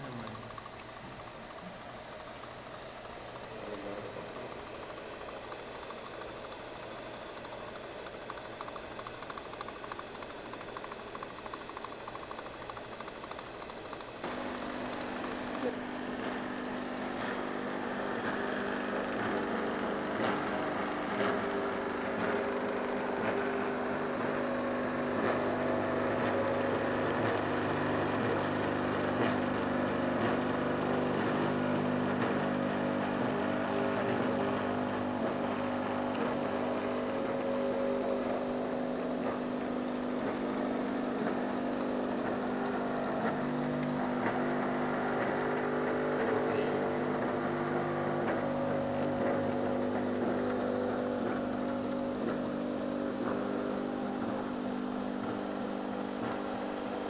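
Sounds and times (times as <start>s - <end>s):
roller drive motors humming: 0.0s - 57.0s
faint ticks: 2.4s - 15.7s.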